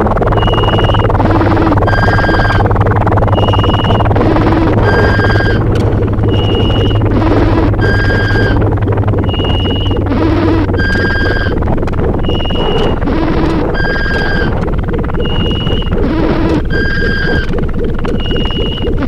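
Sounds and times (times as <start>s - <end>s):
harsh noise wall: 0.0s - 19.0s
short electronic beeps: 0.3s - 1.2s, 1.8s - 2.7s, 3.3s - 4.1s, 4.8s - 5.6s, 6.2s - 8.6s, 9.2s - 11.6s, 12.2s - 13.0s, 13.7s - 14.5s, 15.2s - 17.5s, 18.1s - 19.0s.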